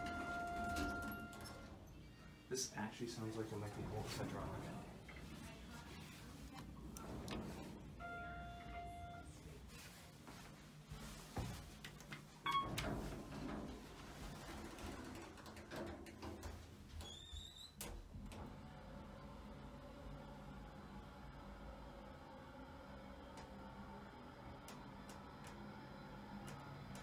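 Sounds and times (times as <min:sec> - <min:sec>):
elevator chime tone: 0:00.0 - 0:01.9, 0:08.0 - 0:09.4, 0:12.4 - 0:12.9
elevator doors sliding: 0:00.0 - 0:01.9, 0:03.3 - 0:09.9, 0:12.4 - 0:23.6.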